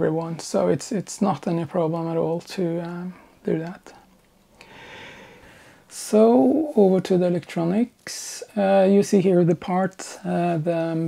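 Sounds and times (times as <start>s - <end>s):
person breathing: 4.6s - 5.9s.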